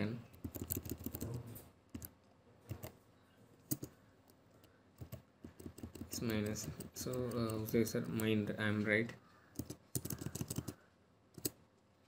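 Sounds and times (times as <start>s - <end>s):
computer keyboard keystrokes: 0.3s - 1.3s, 1.9s - 3.0s, 3.7s - 4.0s, 4.6s - 8.3s, 9.5s - 10.8s, 11.4s - 11.6s.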